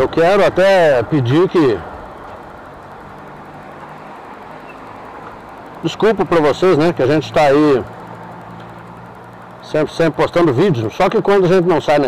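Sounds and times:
motorcycle engine humming: 0.0s - 12.0s
road noise: 0.0s - 12.0s.

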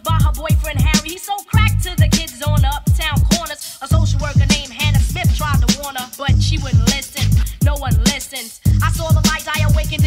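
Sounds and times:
rapping over a beat: 0.0s - 10.0s.

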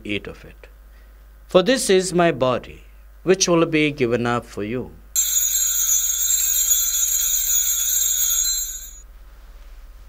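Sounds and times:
small bells ringing: 5.2s - 9.0s.

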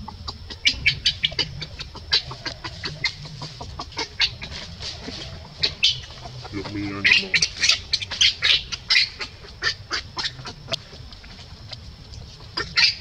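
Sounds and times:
animal clucking chirps: 0.0s - 13.0s.

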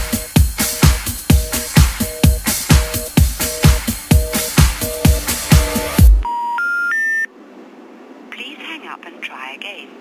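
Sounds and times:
rising telephone beeps: 6.2s - 7.3s.

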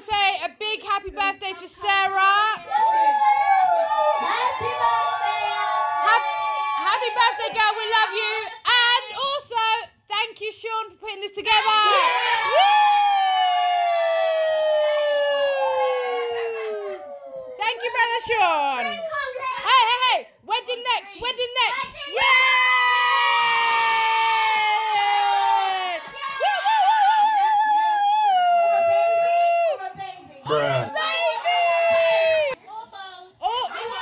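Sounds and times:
women cheering: 2.6s - 8.6s, 11.7s - 19.4s, 22.1s - 32.6s.

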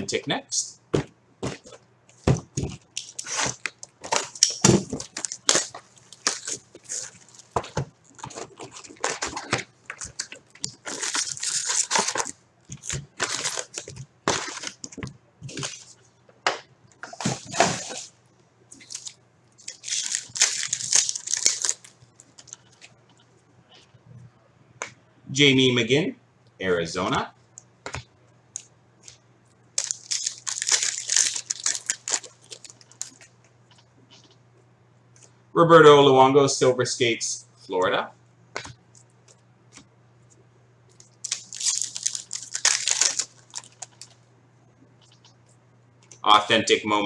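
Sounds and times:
foil packs crinkling as torn open: 3.0s - 14.9s, 18.8s - 22.8s, 29.8s - 33.3s, 40.9s - 44.2s.

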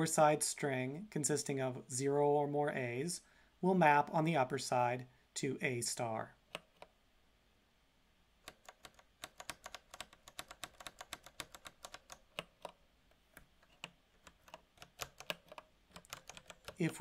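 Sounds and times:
typing on computer keyboard: 8.5s - 17.0s.

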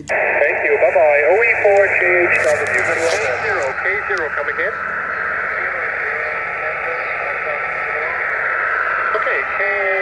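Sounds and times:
shortwave receiver hiss: 0.0s - 10.0s
warbly radio voice: 0.0s - 10.0s.

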